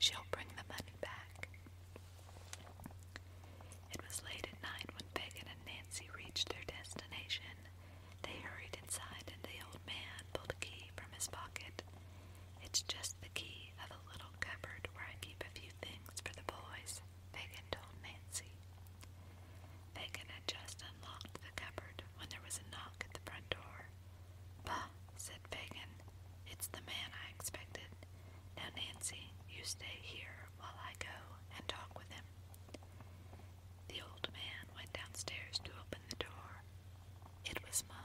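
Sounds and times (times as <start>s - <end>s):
person whispering: 0.0s - 1.6s, 3.9s - 11.8s, 12.6s - 18.5s, 28.6s - 32.2s, 33.9s - 36.6s
steady low hum: 0.0s - 38.0s.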